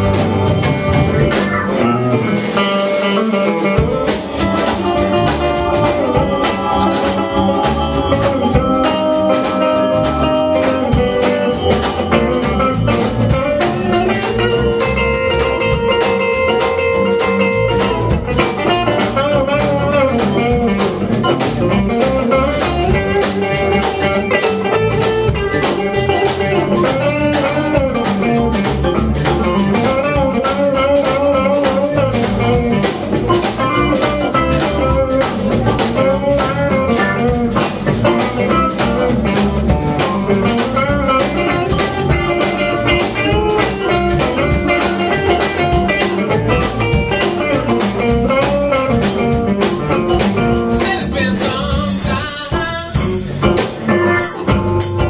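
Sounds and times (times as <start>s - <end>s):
rock band playing: 0.0s - 55.0s
sliding guitar lead line: 0.0s - 55.0s.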